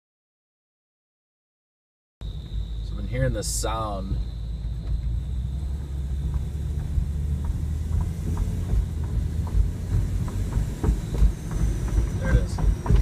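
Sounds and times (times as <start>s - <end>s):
road and engine rumble: 2.2s - 13.0s.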